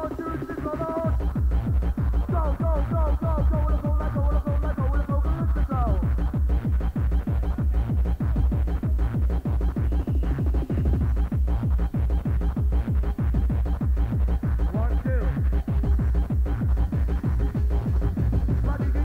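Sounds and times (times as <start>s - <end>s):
electronic dance music: 0.0s - 19.0s.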